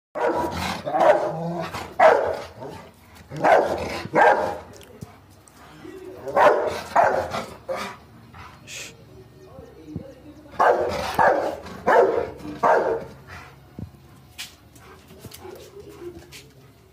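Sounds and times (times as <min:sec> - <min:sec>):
large dog barking: 0:00.2 - 0:04.8, 0:06.2 - 0:08.0, 0:10.6 - 0:13.3.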